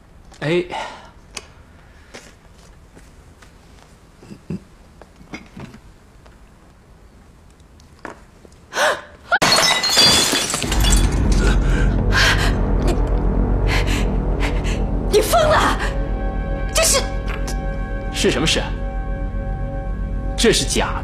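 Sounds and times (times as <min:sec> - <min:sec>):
vase smashing on floor: 0:09.4 - 0:11.6
dramatic music: 0:10.6 - 0:21.0.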